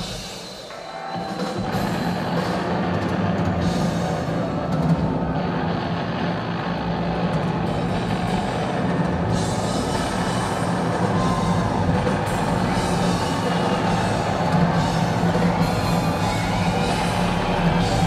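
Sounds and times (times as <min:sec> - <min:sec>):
live rock band playing: 0:01.4 - 0:06.7, 0:07.3 - 0:18.0.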